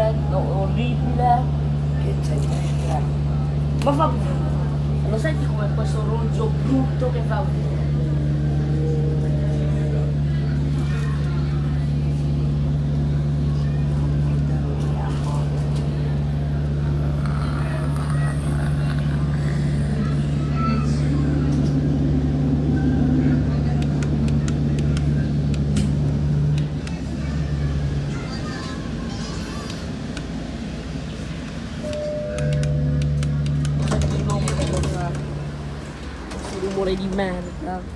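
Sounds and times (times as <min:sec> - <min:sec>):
vehicle cabin low hum: 0:06.1 - 0:37.4.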